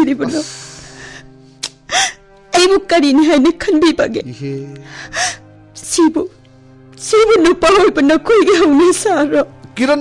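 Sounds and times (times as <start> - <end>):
low background music: 0.0 - 10.0.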